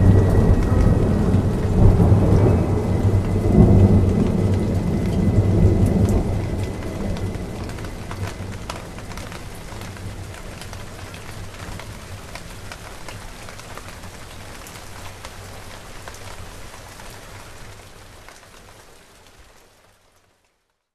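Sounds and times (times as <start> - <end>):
rain falling steadily: 0.0 - 20.9.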